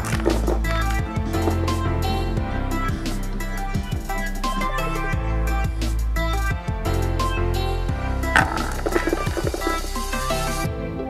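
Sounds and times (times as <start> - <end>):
background music: 0.0 - 11.0
ball striking bowling pins: 8.4 - 9.8.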